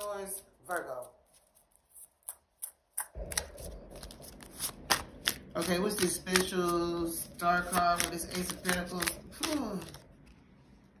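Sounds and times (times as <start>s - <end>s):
cards rustling: 0.0s - 10.6s
crisp card snaps: 3.0s - 6.6s.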